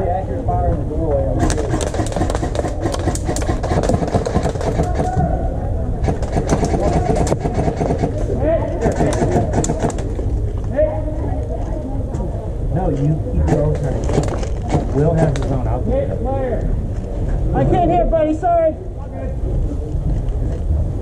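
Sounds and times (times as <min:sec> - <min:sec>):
muffled talking: 0:00.0 - 0:21.0
low rumble on microphone: 0:18.8 - 0:21.0.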